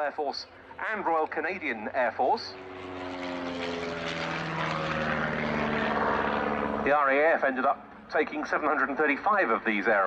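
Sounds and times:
propeller plane droning overhead: 0:00.0 - 0:10.0.

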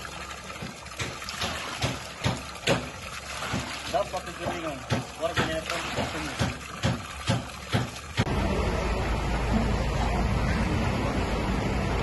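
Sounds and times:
water from hose splashing: 0:00.0 - 0:08.3
engine running low rumble: 0:08.2 - 0:12.0.

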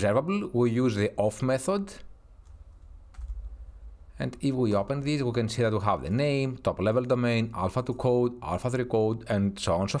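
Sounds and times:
steady low hum: 0:00.1 - 0:10.0
faint keyboard clicks: 0:02.4 - 0:03.6.

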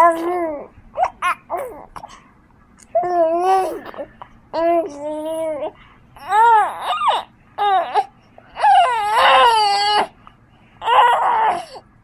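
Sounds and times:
baby cooing: 0:00.0 - 0:02.1, 0:02.9 - 0:10.1.

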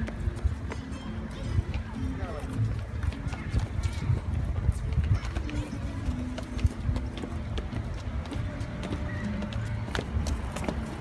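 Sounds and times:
faint voices: 0:00.0 - 0:11.0
footsteps on paved path: 0:00.0 - 0:11.0
child running: 0:02.4 - 0:11.0.

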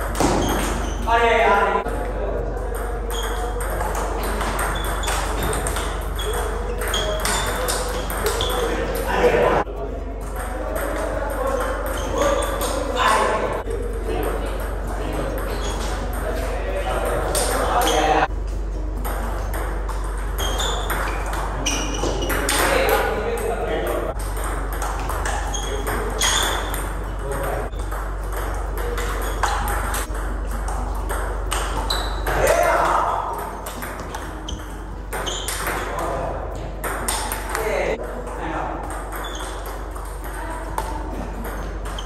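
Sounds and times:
ping pong ball clicking: 0:02.6 - 0:09.2, 0:10.2 - 0:42.0.

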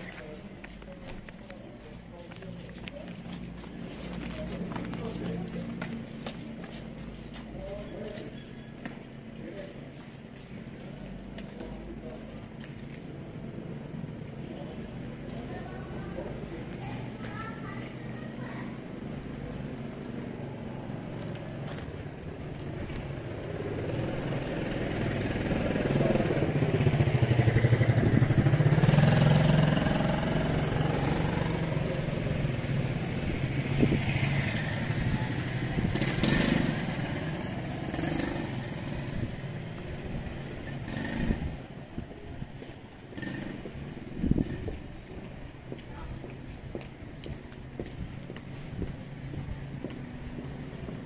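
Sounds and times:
vehicle engine passing by: 0:18.0 - 0:41.8.

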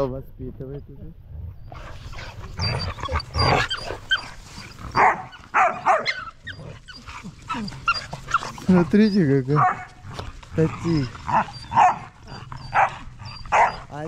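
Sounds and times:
puppies whining: 0:00.8 - 0:14.0.

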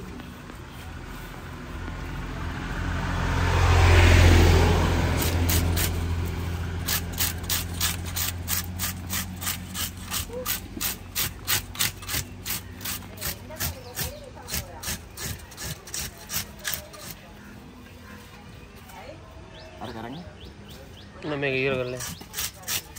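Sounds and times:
passing road vehicle: 0:00.0 - 0:21.9
scraper rasping fish scales: 0:06.8 - 0:17.2, 0:21.9 - 0:22.9.

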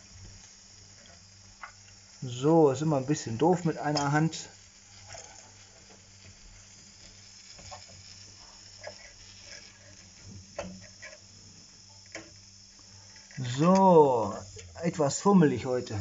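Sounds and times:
steady faint hiss: 0:00.0 - 0:16.0.

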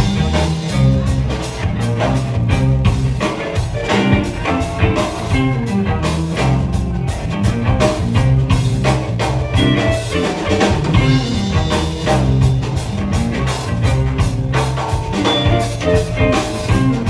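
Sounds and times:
bass guitar: 0:00.0 - 0:17.0
drum kit: 0:00.0 - 0:17.0
electric guitar: 0:00.0 - 0:17.0.

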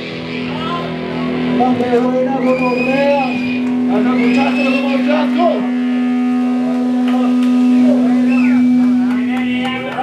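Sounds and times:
electric guitar drone with squeals: 0:00.0 - 0:10.0
voices shouting: 0:02.3 - 0:05.7.

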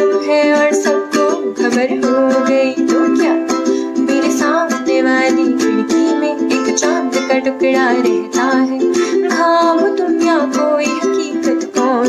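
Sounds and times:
ukulele strumming: 0:00.0 - 0:12.0
woman singing: 0:00.0 - 0:12.0.

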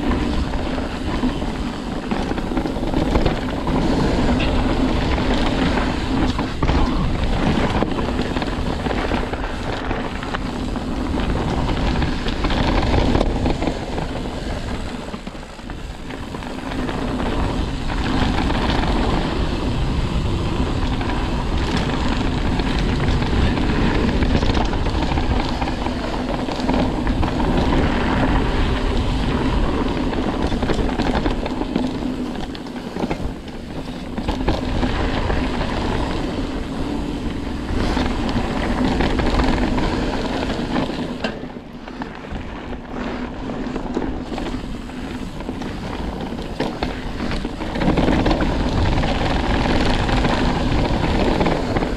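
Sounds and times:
bike rattles and knocks: 0:00.0 - 0:51.9
bike tyres rumbling on dirt trail: 0:00.0 - 0:51.9.

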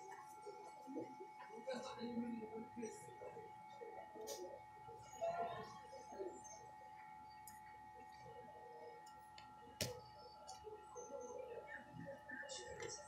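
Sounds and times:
faint background voices: 0:00.0 - 0:13.0.

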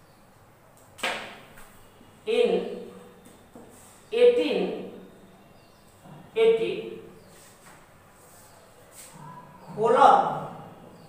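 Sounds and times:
marker swishing across whiteboard: 0:07.3 - 0:09.3.

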